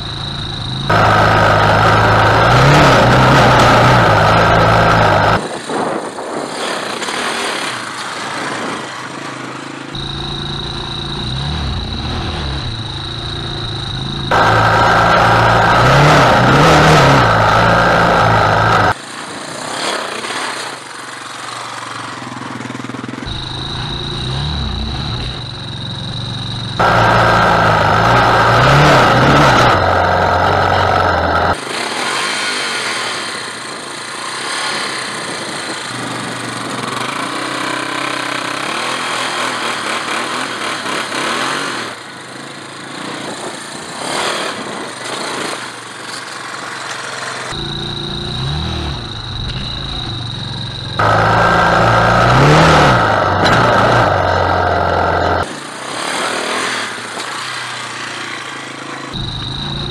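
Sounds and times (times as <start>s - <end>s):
quad engine revving: 0.0s - 7.8s, 9.9s - 19.0s, 22.5s - 42.1s, 46.5s - 59.9s.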